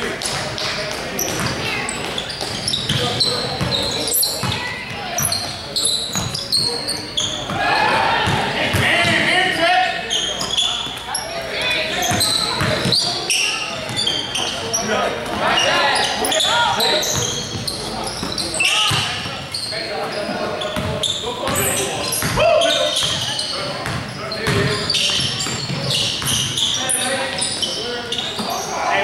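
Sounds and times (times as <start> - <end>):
sneakers squeaking on wooden floor: 0.0 - 29.0
basketball bouncing: 4.4 - 6.4, 7.4 - 9.3, 12.0 - 13.0, 20.8 - 21.6, 23.0 - 26.5
players shouting: 7.4 - 10.6, 14.7 - 17.4.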